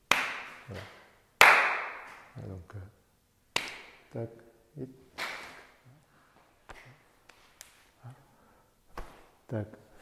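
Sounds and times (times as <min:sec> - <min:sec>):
hand slapping an arm: 0:00.1 - 0:02.4, 0:03.5 - 0:04.0, 0:05.1 - 0:05.8, 0:06.4 - 0:07.9, 0:08.9 - 0:09.4.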